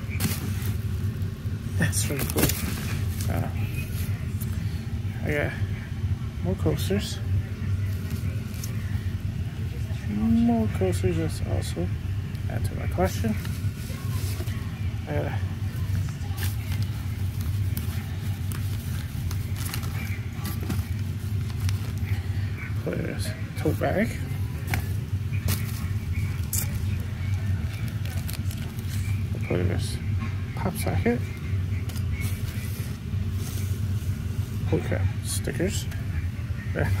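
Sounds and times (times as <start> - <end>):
packaging rustling: 0.0 - 1.3, 1.9 - 4.2, 15.7 - 22.4, 24.3 - 29.4
steady low hum: 0.0 - 37.0.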